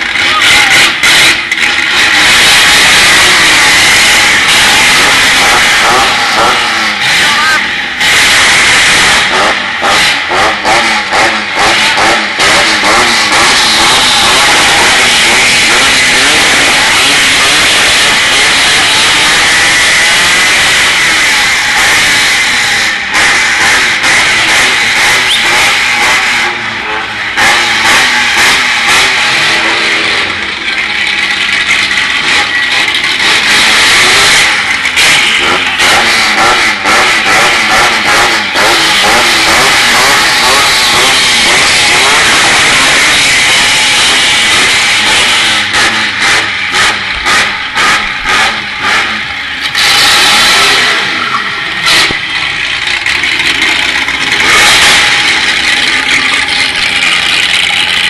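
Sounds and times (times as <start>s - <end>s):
car engines revving: 0.0s - 58.0s
engine revving in short bursts: 32.1s - 52.7s.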